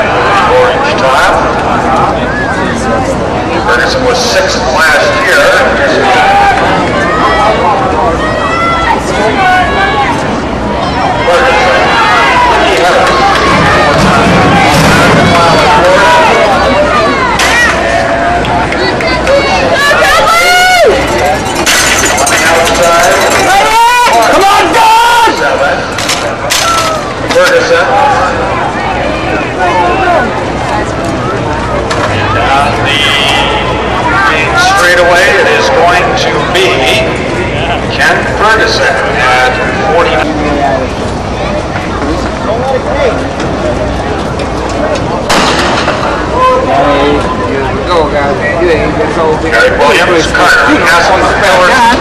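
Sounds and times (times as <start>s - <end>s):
crowd noise: 0.0s - 52.0s
spectators yelling and cheering: 0.0s - 52.0s
starting pistol crack: 45.3s - 46.2s.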